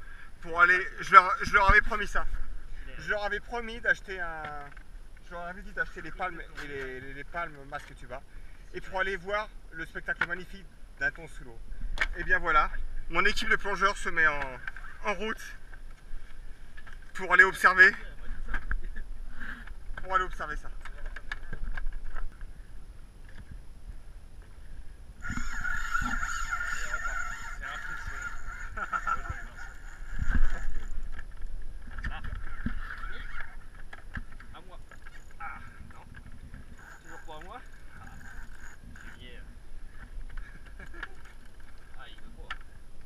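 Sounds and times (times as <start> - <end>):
fishing reel drag buzzing: 25.1 - 42.0.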